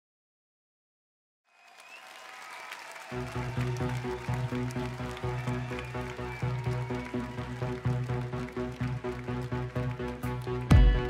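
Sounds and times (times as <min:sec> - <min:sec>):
audience applauding: 0:01.5 - 0:11.0.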